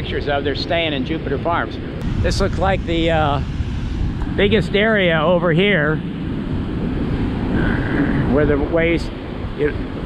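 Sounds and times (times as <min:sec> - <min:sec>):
wind on microphone: 0:00.0 - 0:10.0
ocean surf breaking: 0:02.0 - 0:10.0.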